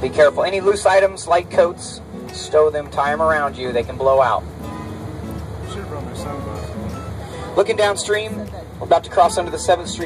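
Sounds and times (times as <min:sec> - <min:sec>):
boat engine droning: 0:00.0 - 0:10.0
quiet music: 0:00.0 - 0:10.0.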